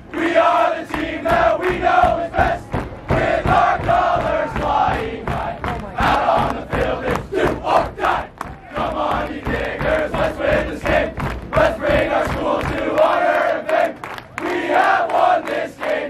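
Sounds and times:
men singing in unison: 0:00.1 - 0:16.0
hand claps: 0:00.8 - 0:02.2, 0:08.0 - 0:16.0.

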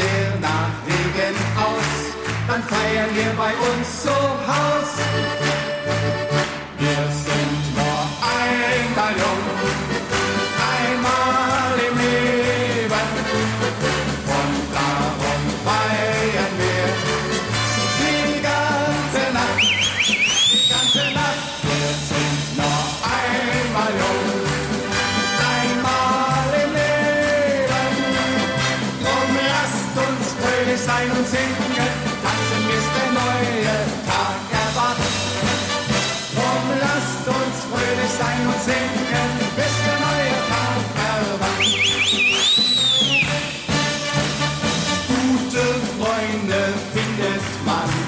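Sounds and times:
accordions and guitar carnival music: 0:00.0 - 0:48.0
whistle warbling and sliding: 0:19.4 - 0:21.5, 0:41.4 - 0:43.8.

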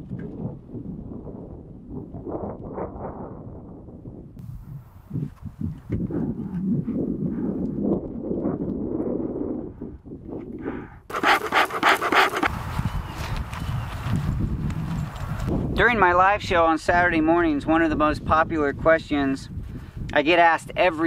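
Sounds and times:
bellows puffing air: 0:10.6 - 0:12.7.

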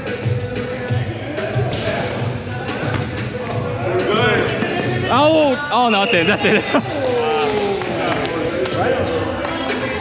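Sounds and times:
voices: 0:00.4 - 0:10.0
ball bouncing on wooden floor: 0:02.8 - 0:03.3.

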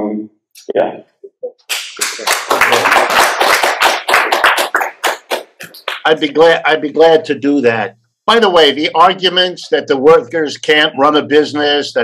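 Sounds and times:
audience applauding: 0:01.6 - 0:06.4.

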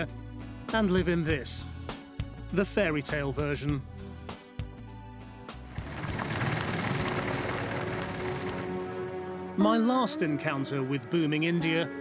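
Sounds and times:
car engine running: 0:05.6 - 0:08.9
rush of outdoor noise: 0:05.7 - 0:09.1.

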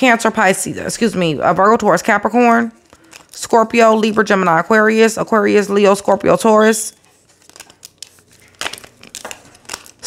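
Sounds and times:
cards rustling and clicking: 0:07.0 - 0:10.0.

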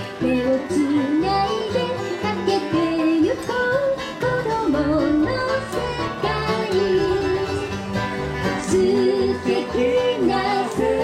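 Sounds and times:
bluegrass band playing: 0:00.0 - 0:11.0
sliding lead melody: 0:00.0 - 0:11.0.

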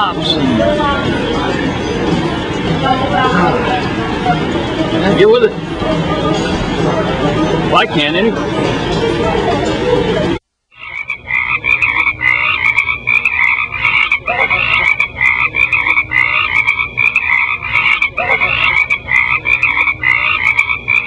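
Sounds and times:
chorus of croaking animal calls: 0:10.7 - 0:21.0.

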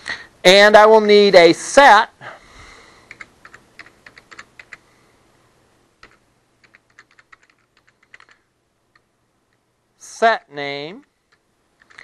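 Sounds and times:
keyboard key clicks: 0:11.3 - 0:12.0.

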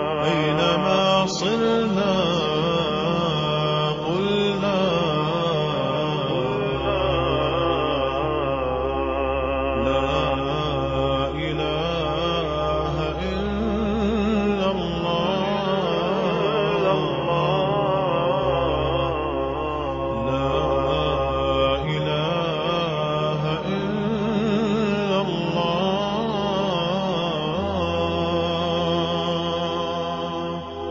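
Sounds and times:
steady low drone: 0:00.0 - 0:30.9
voice chanting slow melody: 0:00.0 - 0:30.9.

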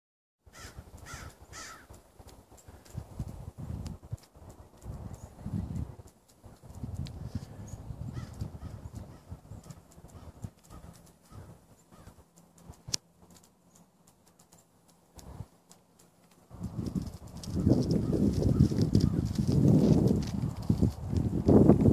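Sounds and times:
wind buffeting microphone: 0:00.6 - 0:13.0, 0:16.4 - 0:21.9
pine branches brushing microphone: 0:16.4 - 0:21.9.

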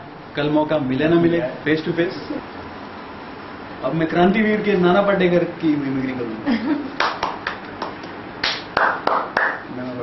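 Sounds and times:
hand claps and taps: 0:07.0 - 0:09.6.

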